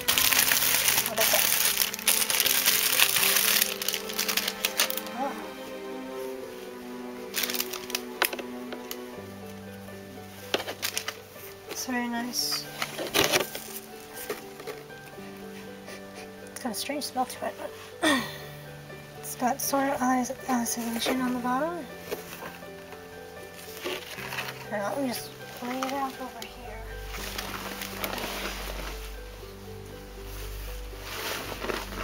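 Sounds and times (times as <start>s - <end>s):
plastic wrapping crinkling: 0.0s - 16.5s, 20.4s - 32.0s
music of sustained chords: 0.0s - 32.0s
clicks and handling noise: 7.3s - 9.0s, 10.5s - 11.9s, 12.5s - 15.1s.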